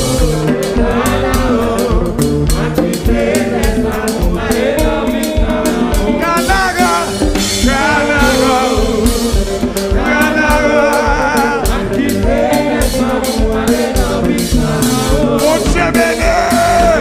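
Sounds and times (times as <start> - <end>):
band playing: 0.0 - 17.0
congregation singing worship song: 0.0 - 17.0
drum kit steady beat: 0.0 - 17.0.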